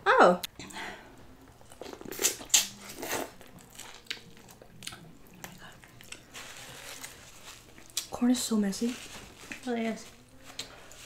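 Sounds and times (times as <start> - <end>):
wet chewing clicks: 3.4 - 6.3.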